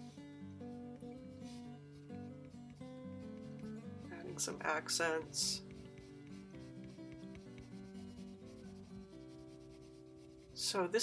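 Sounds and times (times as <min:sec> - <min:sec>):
soft guitar music: 0:00.0 - 0:11.0
colored pencil rubbing on paper: 0:00.7 - 0:11.0.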